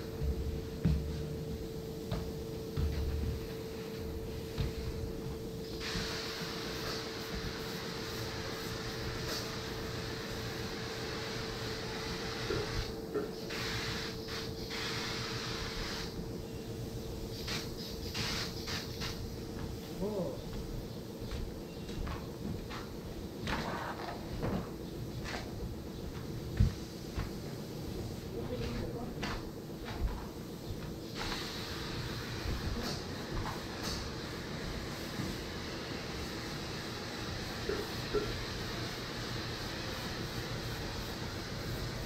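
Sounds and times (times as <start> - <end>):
steady hum: 0.0 - 42.0
spray gun hissing: 1.6 - 20.3, 26.6 - 29.1, 30.5 - 42.0.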